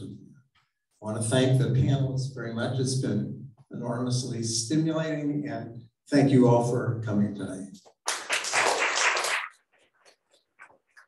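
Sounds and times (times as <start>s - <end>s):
scattered faint claps: 7.8s - 11.0s
crowd applause: 8.1s - 9.6s.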